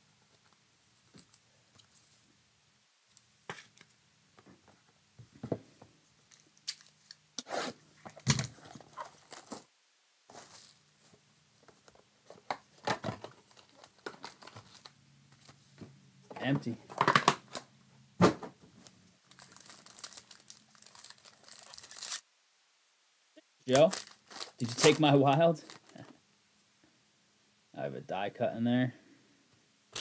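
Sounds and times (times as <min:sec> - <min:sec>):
packaging tearing and crinkling: 0:08.2 - 0:09.7, 0:19.3 - 0:22.2, 0:23.7 - 0:25.0, 0:25.6 - 0:26.0.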